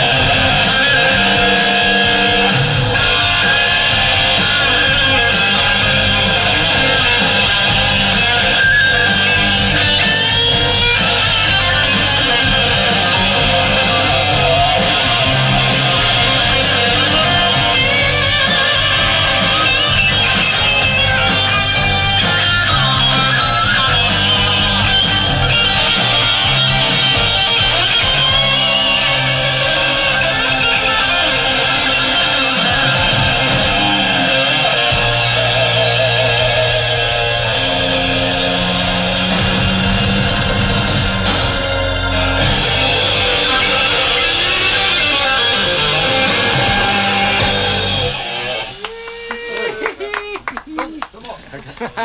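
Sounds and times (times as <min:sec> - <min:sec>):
bass notes: 0:00.0 - 0:48.8
electric guitar playing rock: 0:00.0 - 0:50.4.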